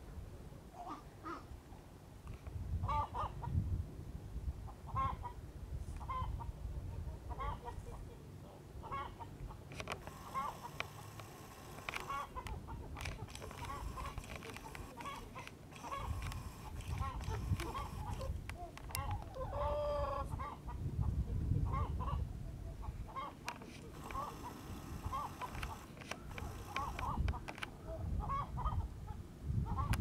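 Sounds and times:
chickens clucking: 0:08.8 - 0:27.5.

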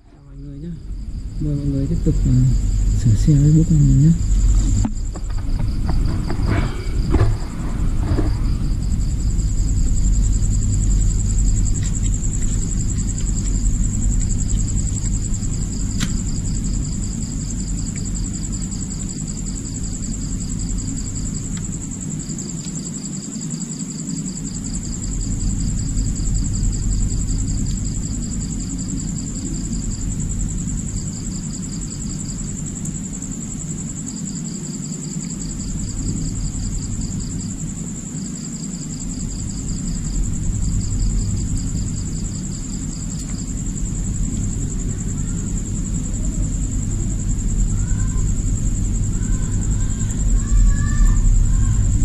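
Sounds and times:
low rumble: 0:00.0 - 0:18.9, 0:39.0 - 0:52.0
crickets trilling: 0:00.0 - 0:52.0
steady low hum: 0:00.0 - 0:52.0.

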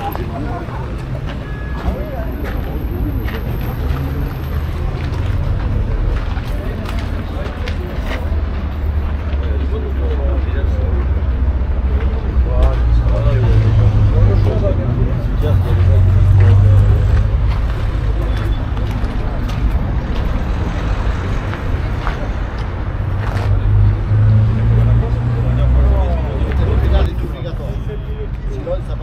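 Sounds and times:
people talking: 0:00.0 - 0:20.4, 0:21.2 - 0:29.0.

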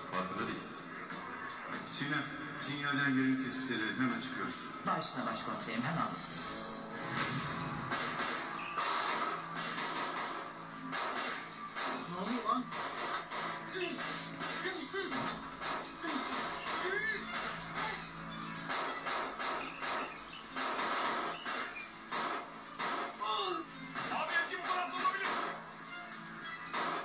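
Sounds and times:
action music with percussive beat: 0:06.3 - 0:27.0.

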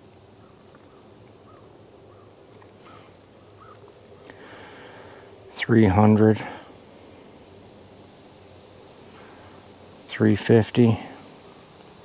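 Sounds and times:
low steady hum: 0:00.0 - 0:12.0
bird calling softly: 0:00.3 - 0:10.1, 0:11.1 - 0:12.0.

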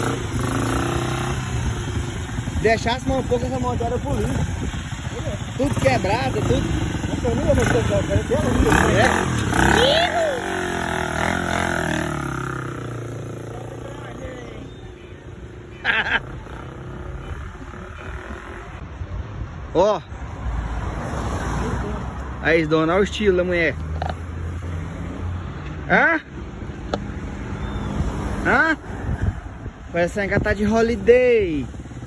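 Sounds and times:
motorcycle engine riding off: 0:00.0 - 0:14.4
street traffic rumble: 0:00.0 - 0:32.0.

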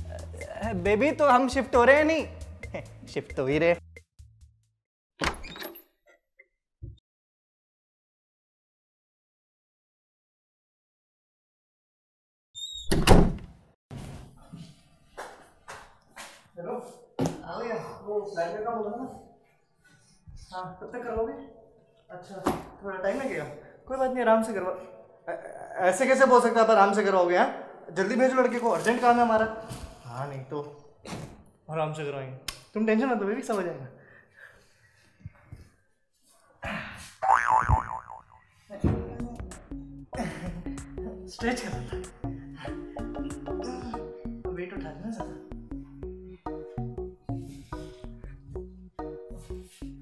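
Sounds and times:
door thudding shut: 0:05.2 - 0:05.8, 0:12.8 - 0:13.6
door hinge squeak: 0:05.2 - 0:05.9, 0:12.6 - 0:13.4
wobbling cartoon boing: 0:37.2 - 0:38.4.

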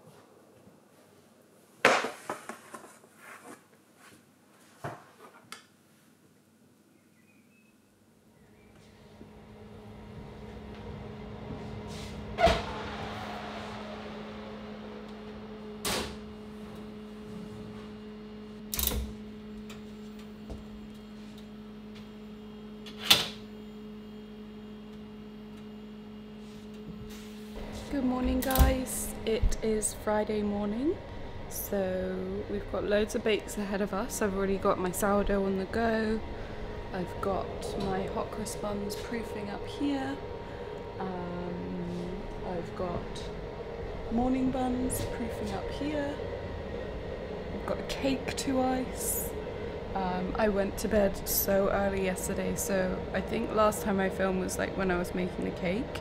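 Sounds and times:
electrical hum: 0:06.2 - 0:56.0.

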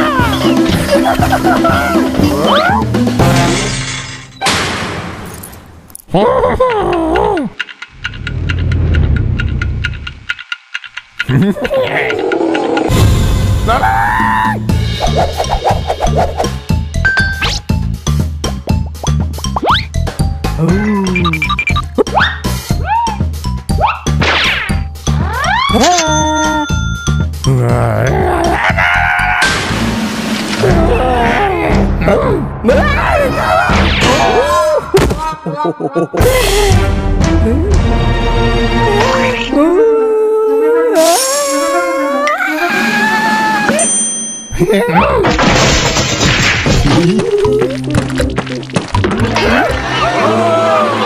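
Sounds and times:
cartoon music with bass line: 0:00.0 - 0:03.9, 0:12.9 - 0:34.8, 0:36.1 - 0:39.7
clock ticking quickly: 0:06.6 - 0:12.9
gliding cartoon vocalisation: 0:11.2 - 0:12.9, 0:20.6 - 0:23.2, 0:39.0 - 0:43.8
comic sound effects: 0:20.6 - 0:22.0.

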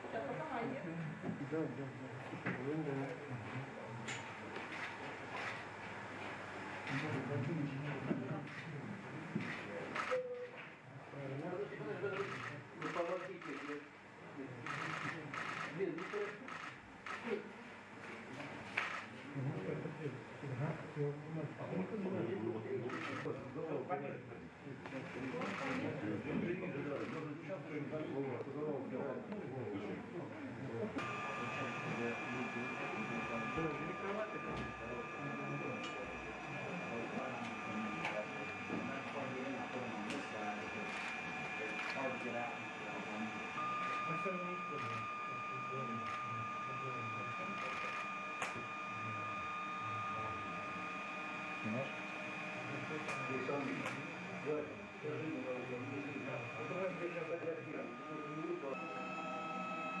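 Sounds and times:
murmur of voices: 0:00.0 - 1:00.0
high-pitched electrical whine: 0:31.0 - 1:00.0.

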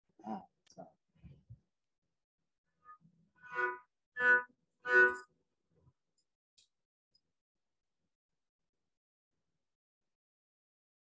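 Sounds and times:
bowed fiddle strokes: 0:03.4 - 0:05.2.

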